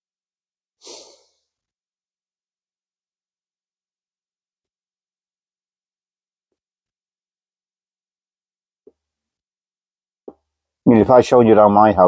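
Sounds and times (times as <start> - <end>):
man exhaling pipe smoke: 0.8 - 1.6.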